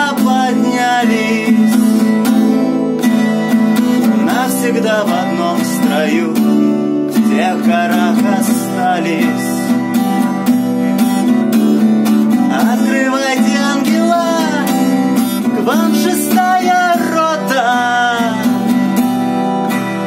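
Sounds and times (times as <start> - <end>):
man singing: 0.0 - 10.2, 12.3 - 20.0
acoustic guitar strumming: 0.0 - 20.0.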